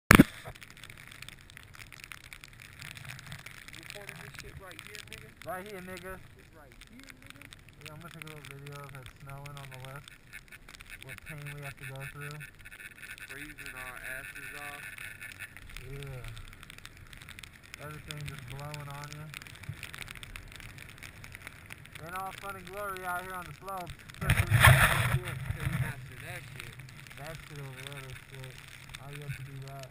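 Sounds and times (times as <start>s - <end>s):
faint crackling: 0.1s - 29.9s
wind and snow on microphone: 0.1s - 29.9s.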